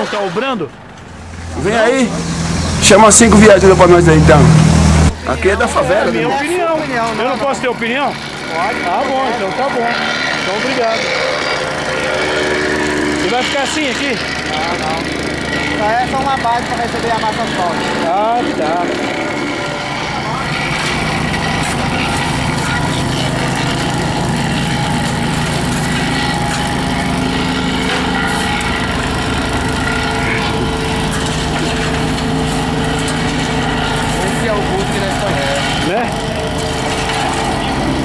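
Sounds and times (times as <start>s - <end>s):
heavy vehicle engine idling: 0.4s - 8.6s, 11.4s - 38.0s.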